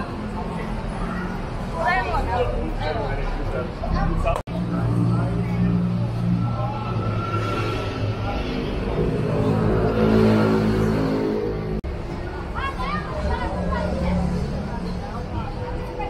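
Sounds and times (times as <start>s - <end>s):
street noise: 0.0s - 16.0s.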